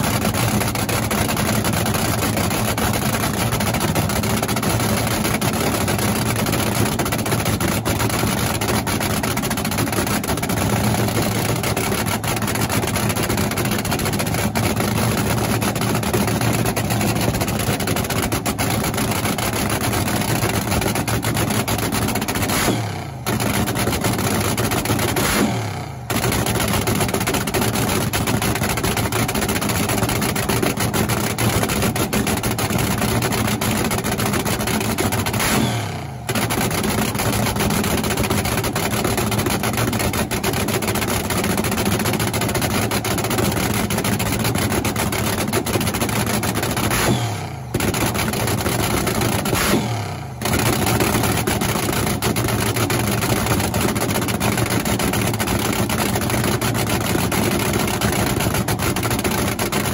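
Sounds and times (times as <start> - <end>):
dragster engine idling roughly: 0.0 - 59.9.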